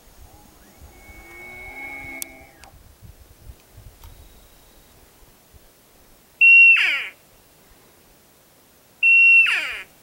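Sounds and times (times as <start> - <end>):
elk bugling: 0.3 - 2.7.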